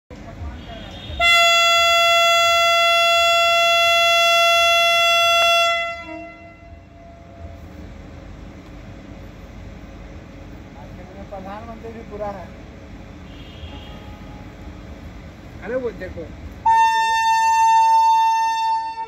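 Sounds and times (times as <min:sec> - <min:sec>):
electric locomotive horn blast: 0:00.5 - 0:07.4, 0:13.2 - 0:15.0, 0:16.6 - 0:19.0.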